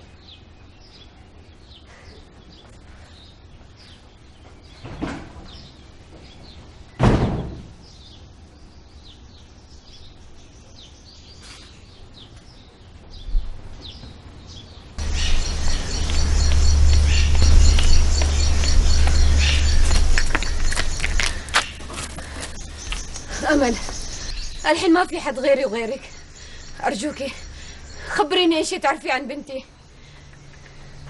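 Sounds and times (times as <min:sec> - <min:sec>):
birds chirping: 0:00.0 - 0:31.0
steady low rumble: 0:12.9 - 0:31.0
rapid high-pitched chirping: 0:15.0 - 0:28.4.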